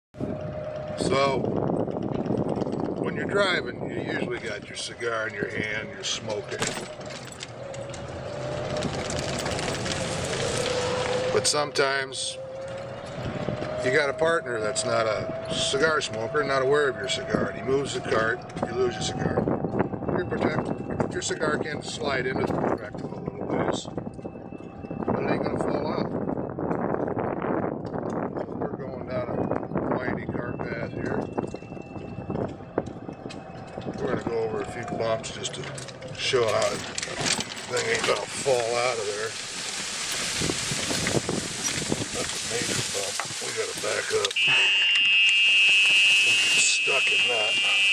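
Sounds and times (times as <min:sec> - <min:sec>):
golf cart running: 0:00.2 - 0:47.9.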